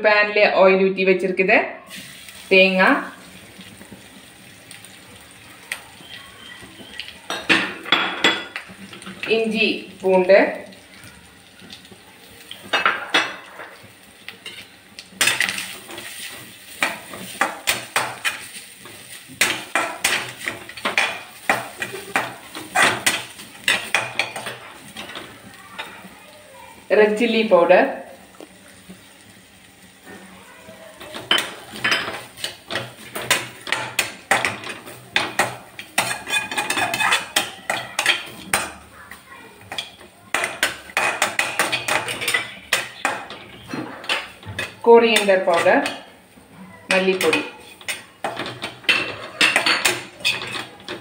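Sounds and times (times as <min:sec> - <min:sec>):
spatula scraping a pan: 0:12.4 - 0:26.9, 0:29.9 - 0:51.0
metal spatula striking a pan: 0:15.2 - 0:26.0, 0:31.0 - 0:38.9, 0:39.6 - 0:46.1.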